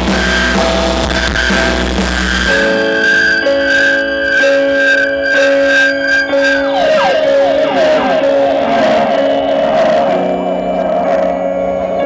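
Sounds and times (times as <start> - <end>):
droning electric guitars: 0.0 - 12.0
live rock band through pa: 0.0 - 12.0.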